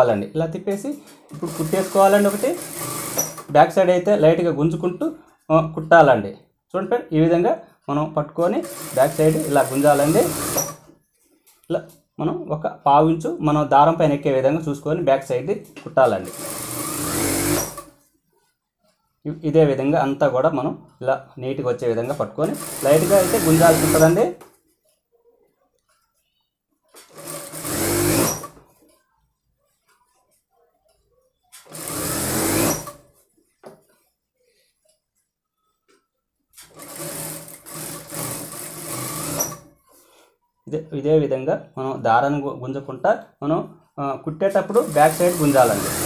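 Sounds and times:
sewing machine stitching: 0:00.8 - 0:03.8, 0:08.4 - 0:10.9, 0:16.0 - 0:18.0, 0:22.0 - 0:24.4, 0:27.0 - 0:28.6, 0:31.6 - 0:33.1, 0:36.6 - 0:39.7, 0:44.6 - 0:46.0.

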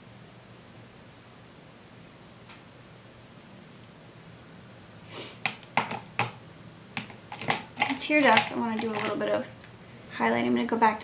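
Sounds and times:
makeup items clicking on table: 0:05.5 - 0:06.4, 0:07.0 - 0:09.2.

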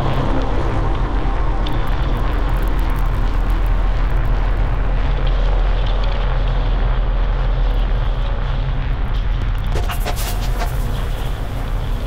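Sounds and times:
deep bass drone: 0:00.0 - 0:12.0
hiss-like noisy texture: 0:00.0 - 0:12.0.

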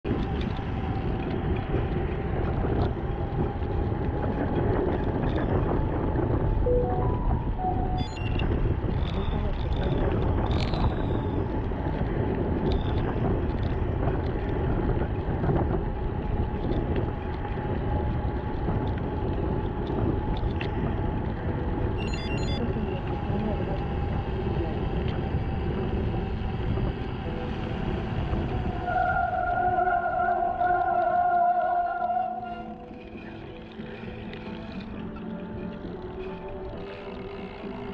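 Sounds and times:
wind rushing over microphone: 0:00.0 - 0:37.9
bicycle tyres rolling on wet path: 0:00.1 - 0:06.7, 0:08.4 - 0:37.9
steady higher tone: 0:06.6 - 0:08.8.

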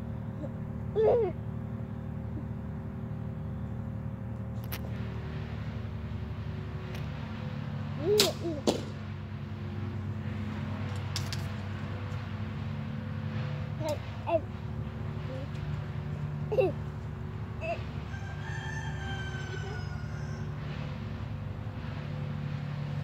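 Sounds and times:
steady low drone: 0:00.0 - 0:23.0.

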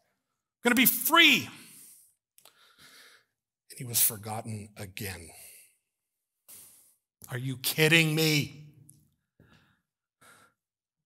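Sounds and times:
man breathing into microphone: 0:01.8 - 0:03.4, 0:06.5 - 0:07.0.

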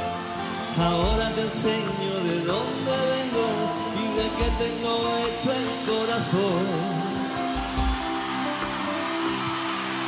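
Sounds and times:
concert crowd noise: 0:00.0 - 0:10.0
live band holding a chord: 0:00.0 - 0:10.0.

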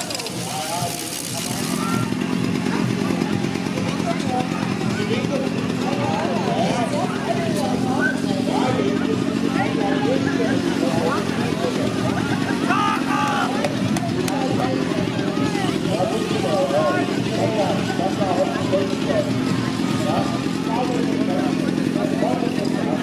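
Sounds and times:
low pulsing engine drone: 0:00.0 - 0:23.0
many voices calling out: 0:00.0 - 0:23.0.

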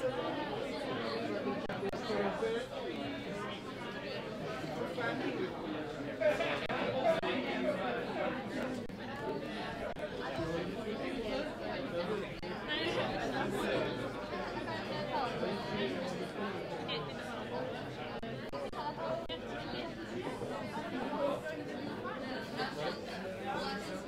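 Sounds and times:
crowd chatter in a hall: 0:00.0 - 0:24.0.

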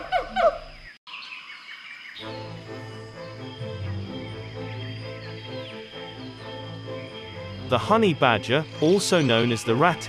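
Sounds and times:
bird chirping falling notes: 0:00.0 - 0:10.0.

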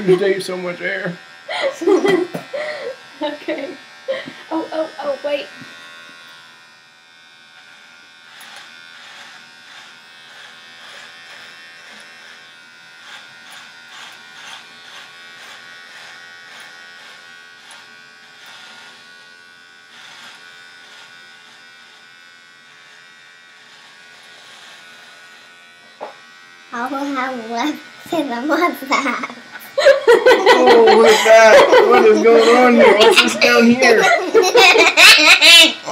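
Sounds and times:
crackles of hair being cut: 0:00.0 - 0:35.9
electric shaver buzzing: 0:00.0 - 0:35.9.

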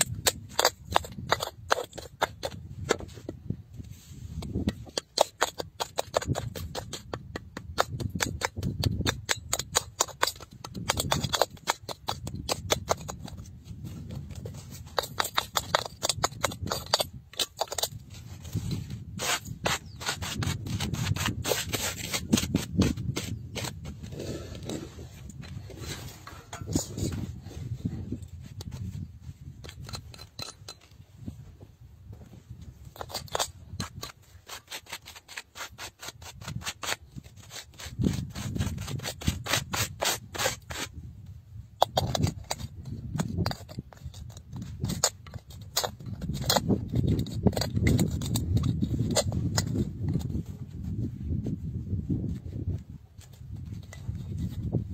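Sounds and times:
gloved hands scraping stone: 0:00.0 - 0:54.9.

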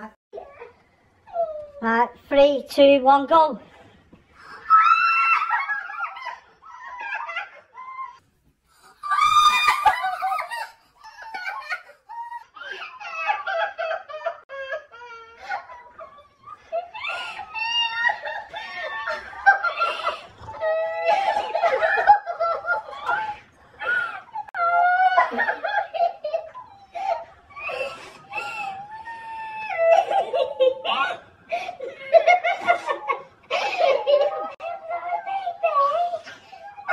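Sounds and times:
people squealing and laughing: 0:04.4 - 0:08.2, 0:08.8 - 0:36.9
woman and girls screaming: 0:04.5 - 0:06.3, 0:09.0 - 0:10.5.

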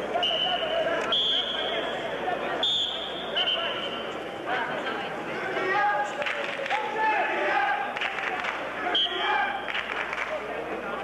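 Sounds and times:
murmur of arena crowd: 0:00.0 - 0:11.0
referee's whistle blasts: 0:00.1 - 0:04.1, 0:08.9 - 0:09.8.

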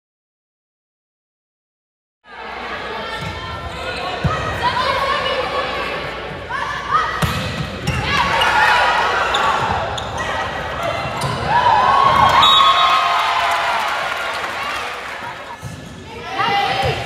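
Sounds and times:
players and spectators shouting: 0:02.5 - 0:15.4, 0:16.1 - 0:17.0.

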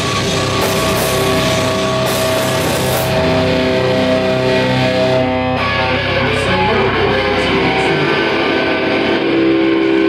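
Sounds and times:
steady tone: 0:00.0 - 0:09.8
distorted electric guitars ringing: 0:00.0 - 0:10.0.

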